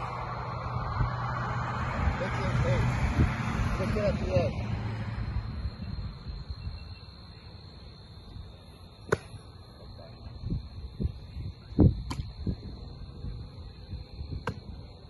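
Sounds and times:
baseball popping into glove: 9.1 - 9.4.

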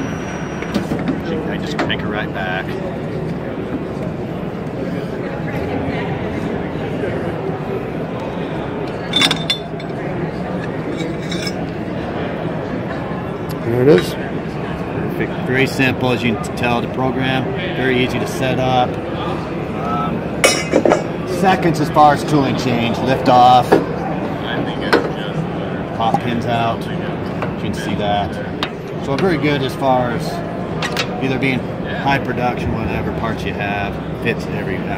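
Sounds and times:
crowd chatter: 0.0 - 34.9
metal pipe clinking: 9.0 - 11.7
sharp metal clank: 9.1 - 10.0.

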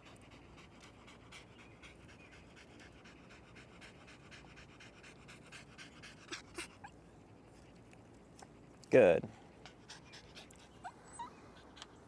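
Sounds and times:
small dog panting: 0.0 - 12.0.

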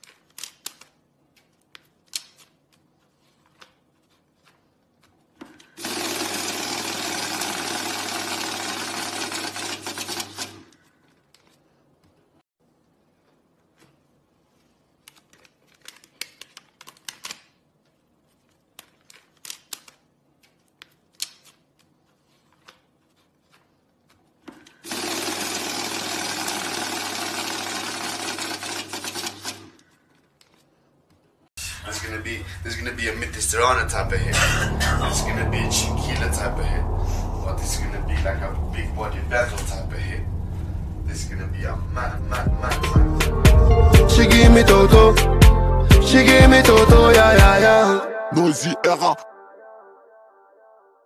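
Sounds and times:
banknotes being handled clicks: 0.0 - 5.8, 14.9 - 24.8
banknote counting machine whirring: 5.8 - 10.7, 24.8 - 29.8
constant low hum: 31.6 - 43.9.

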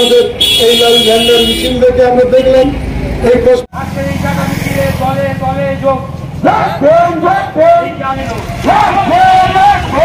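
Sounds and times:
man speaking over loudspeaker: 0.0 - 10.0.

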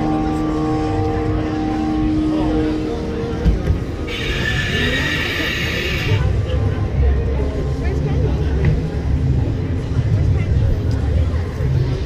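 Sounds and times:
droning chord over loudspeaker: 0.0 - 6.2
crowd murmur: 0.0 - 12.0.

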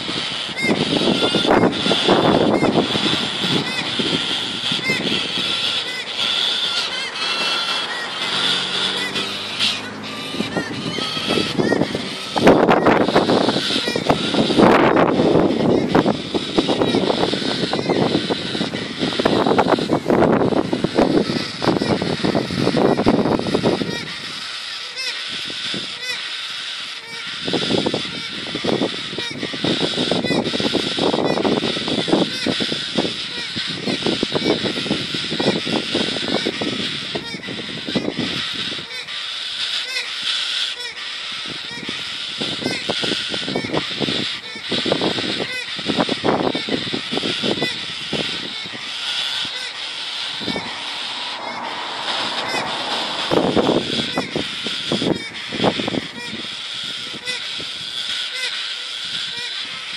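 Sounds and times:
cockatoos calling: 0.0 - 59.9.

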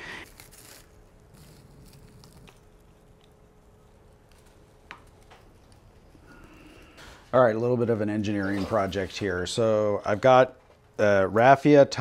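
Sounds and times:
rustling and crunching potting mix: 0.0 - 11.2
faint steady hum: 0.0 - 12.0.

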